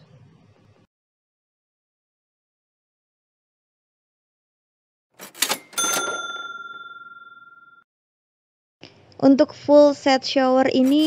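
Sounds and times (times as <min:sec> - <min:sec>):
cash register rattle and clicks: 0:05.2 - 0:07.4
bright bell ding: 0:05.5 - 0:07.8.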